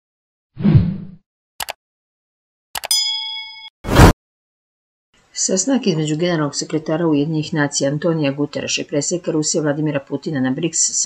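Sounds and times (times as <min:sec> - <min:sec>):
bright bell-like ding: 0:02.8 - 0:03.8.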